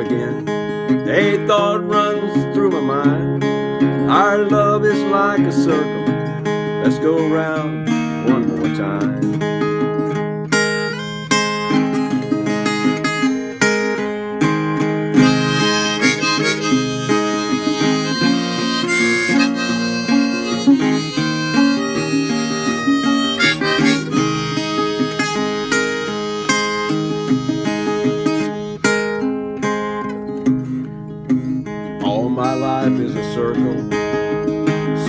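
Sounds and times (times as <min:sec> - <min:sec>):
strummed acoustic guitar: 0:00.0 - 0:35.0
harmonica melody: 0:09.6 - 0:31.4.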